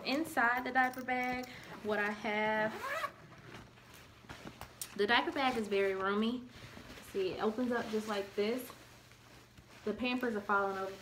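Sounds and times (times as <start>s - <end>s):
fabric bag rustling: 1.8s - 11.0s.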